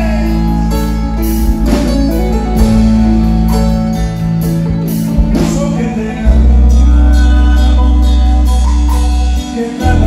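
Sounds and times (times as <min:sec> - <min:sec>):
instrumental band music: 0:00.0 - 0:10.0.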